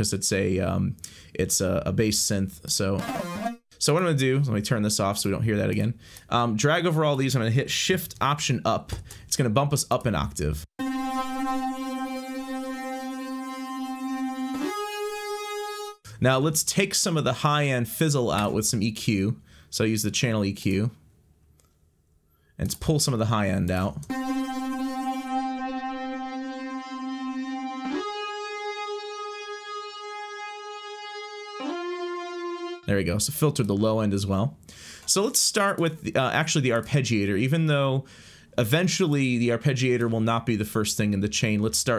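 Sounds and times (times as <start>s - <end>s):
buzzy synthesizer lead note gliding: 3.0s - 3.6s, 10.8s - 16.0s, 24.1s - 32.9s.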